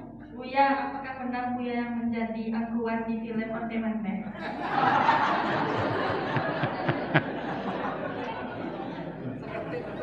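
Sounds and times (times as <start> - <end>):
murmur of voices in a hall: 0.0 - 1.7, 4.0 - 10.0.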